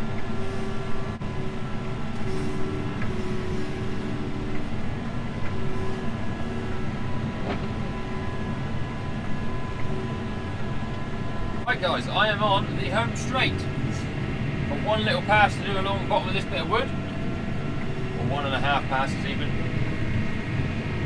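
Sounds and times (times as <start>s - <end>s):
steady whining tones: 0.0s - 21.0s
tractor engine drone: 0.0s - 21.0s.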